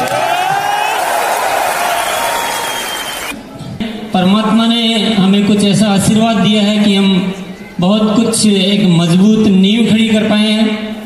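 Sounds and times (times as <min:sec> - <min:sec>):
faint high whistling tone: 0:02.0 - 0:03.3.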